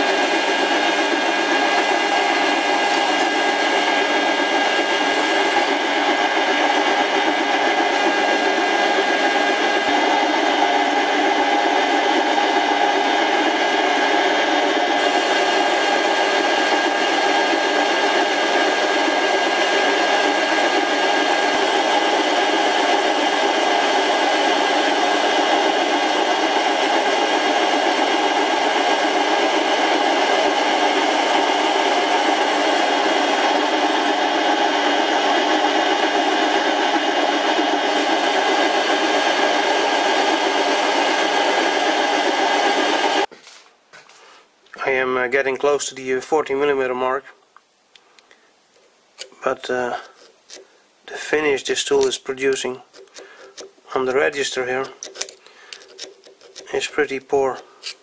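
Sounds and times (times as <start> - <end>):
lathe motor whine: 0.0 - 43.3, 49.2 - 50.6, 51.4 - 58.0.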